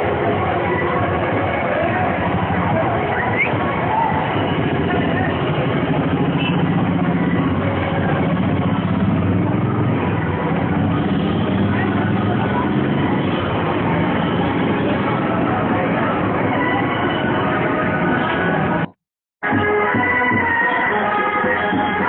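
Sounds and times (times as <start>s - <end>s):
car engines rumbling in traffic: 0.0s - 19.0s
people talking: 0.0s - 19.0s.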